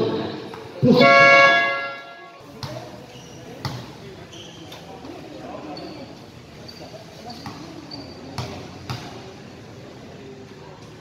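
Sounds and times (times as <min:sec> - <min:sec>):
basketball bouncing on court: 0:02.6 - 0:02.9, 0:03.6 - 0:04.0, 0:08.3 - 0:09.2.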